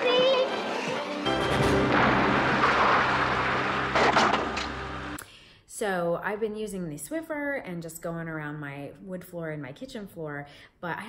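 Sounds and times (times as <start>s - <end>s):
vacuum cleaner running: 0.5s - 5.2s
woman speaking: 5.7s - 11.0s.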